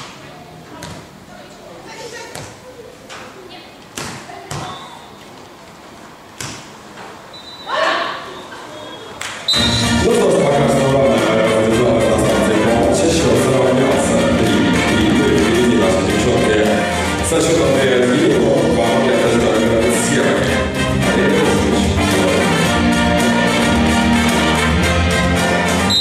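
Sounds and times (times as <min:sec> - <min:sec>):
loud music: 0:09.5 - 0:26.0.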